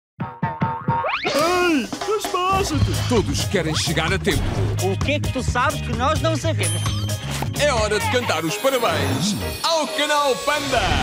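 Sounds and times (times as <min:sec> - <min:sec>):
bouncy boing notes: 0:00.2 - 0:01.7.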